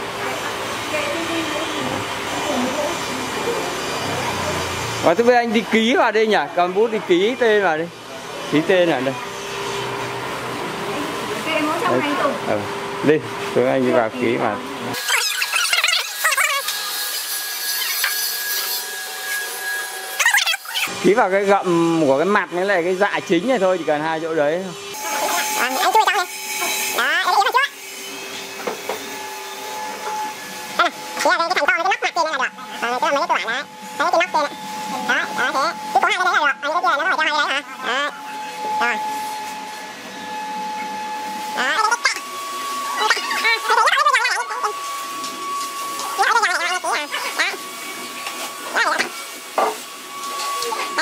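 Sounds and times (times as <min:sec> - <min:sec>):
power tool whining on wood: 0:00.0 - 0:51.0
person speaking: 0:30.8 - 0:38.2, 0:41.6 - 0:42.2, 0:46.1 - 0:47.6.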